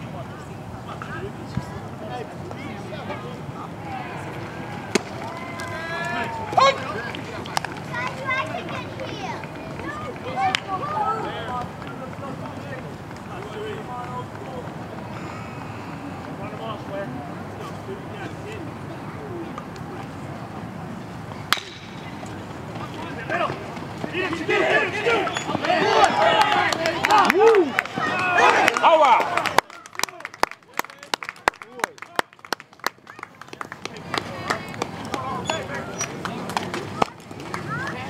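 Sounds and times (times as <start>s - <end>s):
crowd chatter: 0.0s - 38.0s
crowd shouting and cheering: 3.6s - 11.9s, 22.8s - 32.2s
bat cracking baseball: 4.9s - 5.2s, 21.5s - 22.0s.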